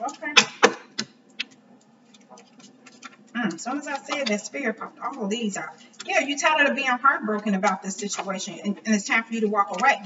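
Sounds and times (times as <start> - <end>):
faint taps and rustles: 0.0 - 6.7
cards being shuffled: 0.4 - 4.6.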